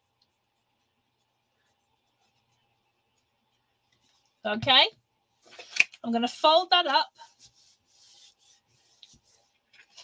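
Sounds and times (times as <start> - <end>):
palms rubbing over card: 7.2 - 10.0.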